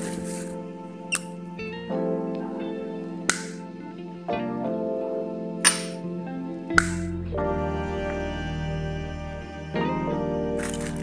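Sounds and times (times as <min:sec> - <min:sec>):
held keyboard-like notes: 0:00.0 - 0:11.0.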